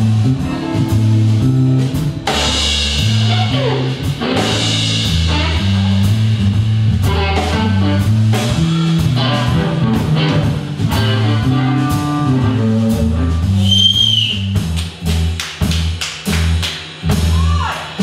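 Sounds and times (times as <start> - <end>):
electric guitar lead: 0.0 - 13.6
electric bass line: 0.0 - 17.7
blues band playing: 0.0 - 18.0
drum kit: 0.0 - 18.0.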